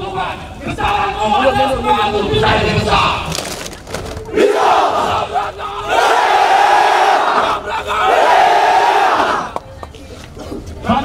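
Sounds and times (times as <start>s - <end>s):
soldiers shouting chant in unison: 4.3s - 9.5s.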